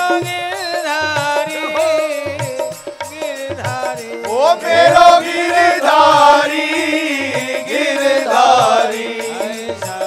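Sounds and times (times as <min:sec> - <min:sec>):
steady drum beat: 0:00.0 - 0:10.0
woman singing devotional song: 0:00.0 - 0:10.0.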